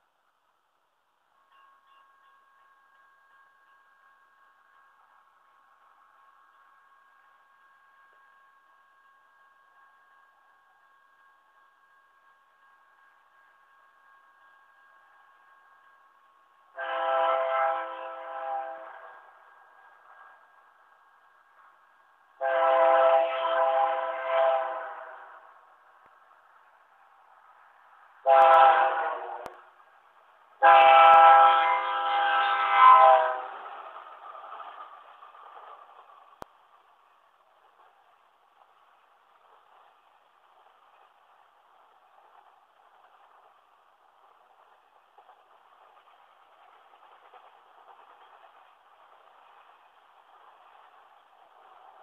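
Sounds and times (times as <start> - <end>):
crossing warning bell ringing: 1.3 - 17.0
locomotive air horn blasts: 16.7 - 19.2, 22.4 - 25.5, 28.2 - 29.6, 30.6 - 33.6.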